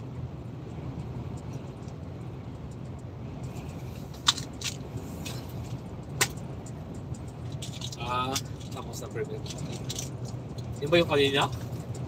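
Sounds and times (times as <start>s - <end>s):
road noise: 0.0s - 12.0s
truck engine drone: 0.0s - 12.0s
sharp clicks and rattles: 1.3s - 12.0s.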